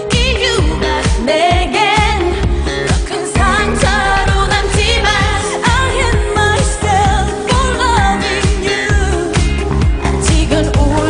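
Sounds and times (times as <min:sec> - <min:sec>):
women singing: 0:00.0 - 0:11.0.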